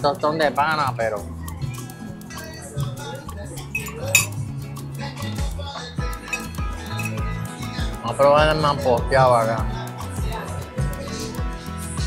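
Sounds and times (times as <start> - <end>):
forks clinking against plates: 3.7 - 4.4, 6.3 - 7.2.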